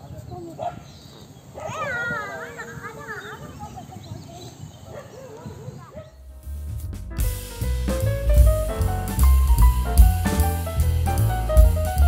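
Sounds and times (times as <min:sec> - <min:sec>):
faint voices: 0:00.0 - 0:06.2.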